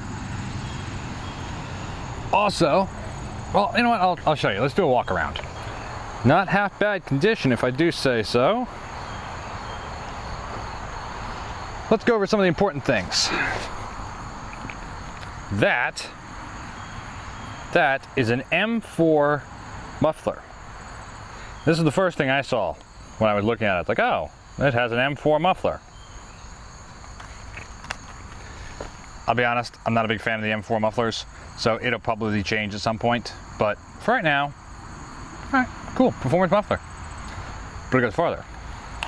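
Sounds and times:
faint high insect tones: 0.0s - 39.0s.

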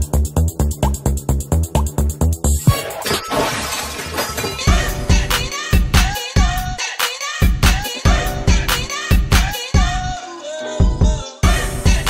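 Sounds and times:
pop beat: 0.0s - 3.0s, 4.5s - 12.0s
glass shattering: 2.7s - 4.7s.

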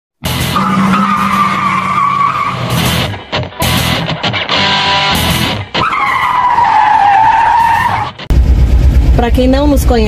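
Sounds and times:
music: 0.2s - 0.8s, 2.6s - 5.9s
racing car with screeching tyres: 0.2s - 4.0s, 4.6s - 8.3s.

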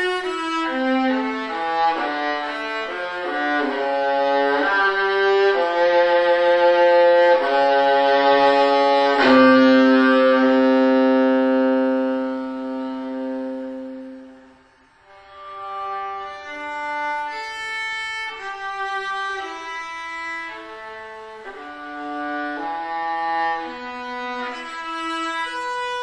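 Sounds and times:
solo violin melody: 0.0s - 26.0s.

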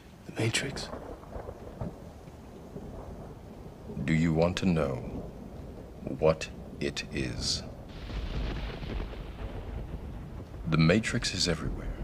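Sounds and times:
distant thunder rumble: 0.0s - 12.0s
faint rain hiss: 0.0s - 12.0s.

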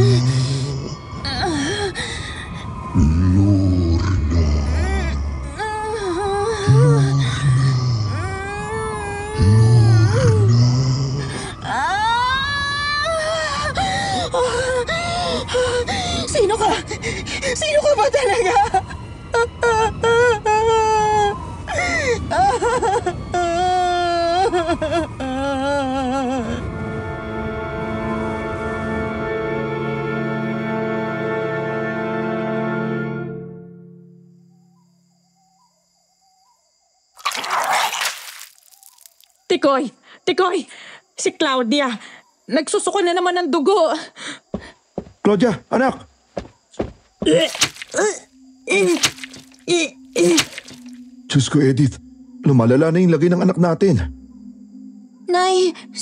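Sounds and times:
sad music: 0.0s - 12.2s, 23.5s - 34.5s, 47.8s - 56.0s
faint wavering tone: 33.5s - 35.8s, 51.0s - 56.0s
person vomiting: 37.2s - 39.1s, 48.7s - 50.9s.

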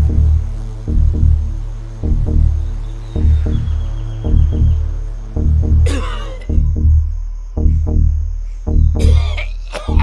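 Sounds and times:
throbbing bass pulse: 0.0s - 9.2s
man coughing: 5.8s - 6.6s, 9.0s - 10.0s.

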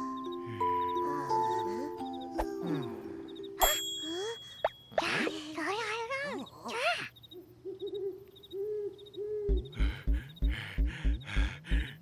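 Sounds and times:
owl hooting: 7.0s - 11.9s
low thumping beat with hiss: 9.3s - 12.0s.

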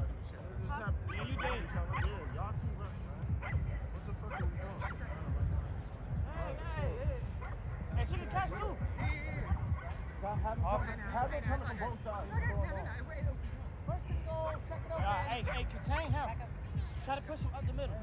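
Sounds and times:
constant low rumble: 0.0s - 18.0s
players shouting: 3.2s - 13.2s, 13.9s - 16.4s.

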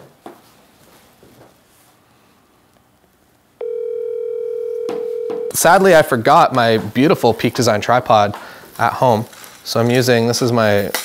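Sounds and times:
telephone ringing tone: 3.6s - 5.6s.

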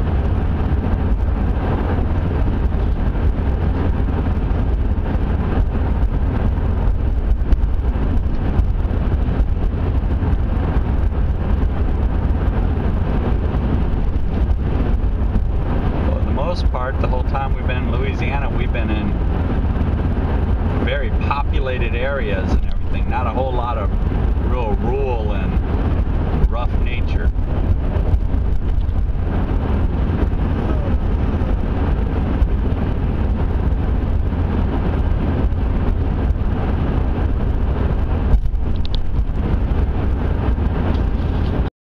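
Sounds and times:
car road and engine noise: 0.0s - 41.7s.

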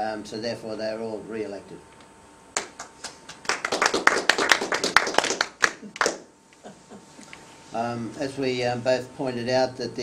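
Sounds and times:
people clapping: 2.5s - 6.3s.

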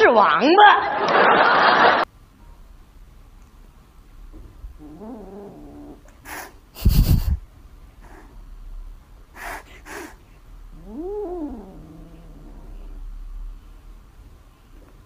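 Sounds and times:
cat meowing: 10.8s - 12.8s.

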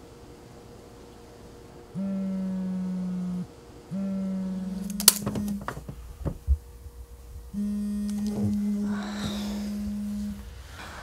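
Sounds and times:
phone vibrating on tabletop: 1.9s - 6.8s, 7.4s - 10.7s.

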